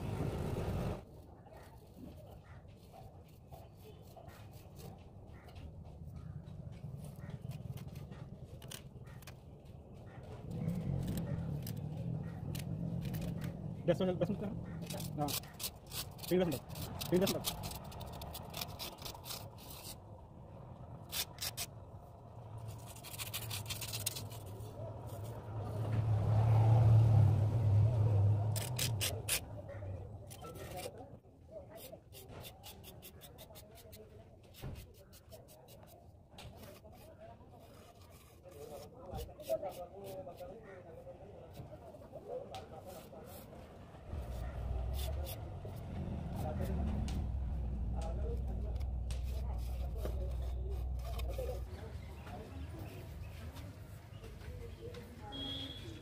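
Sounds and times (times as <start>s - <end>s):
trowel scraping and tapping plaster: 14.7s - 20.0s, 22.6s - 25.4s, 30.2s - 31.0s, 31.7s - 40.5s
faint background voices: 27.8s - 56.0s
low rumble: 44.2s - 51.2s.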